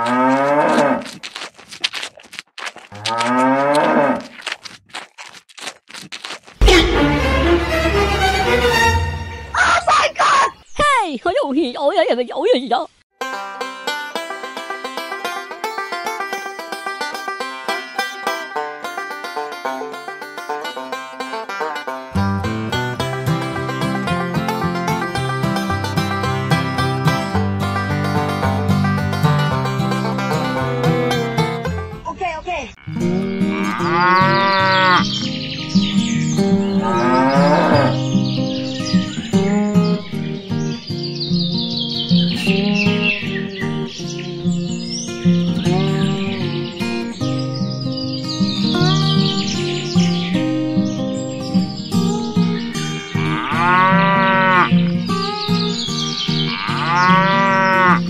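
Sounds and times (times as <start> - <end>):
cow moo sound effects: 0.0 - 1.1, 3.0 - 4.3, 32.8 - 35.0, 36.8 - 38.0, 53.2 - 54.8, 56.5 - 58.0
plucked-string background music: 6.6 - 9.6, 13.2 - 32.0, 33.0 - 58.0.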